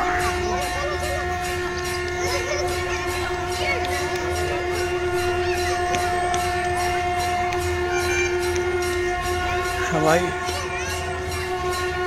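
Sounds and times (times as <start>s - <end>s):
sustained drone note: 0.0s - 12.0s.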